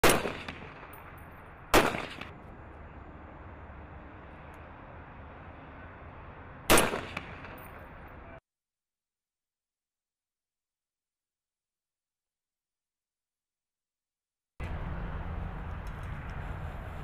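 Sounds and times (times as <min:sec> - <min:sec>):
rifle shots: 0:00.0 - 0:02.4, 0:06.7 - 0:08.0.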